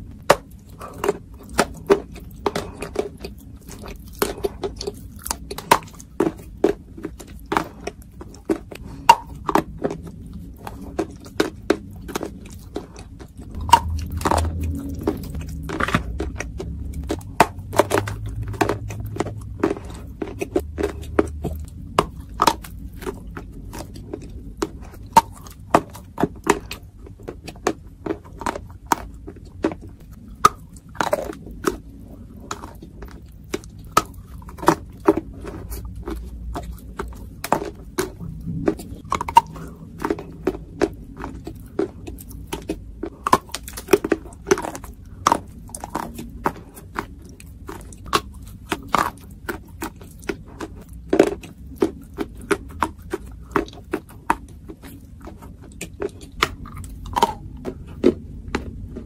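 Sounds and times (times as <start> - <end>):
chewing clay with crunches: 0.0 - 59.0.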